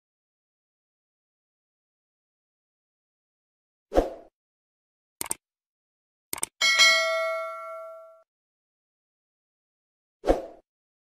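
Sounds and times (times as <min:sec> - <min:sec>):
notification bell ding: 0:06.6 - 0:08.2.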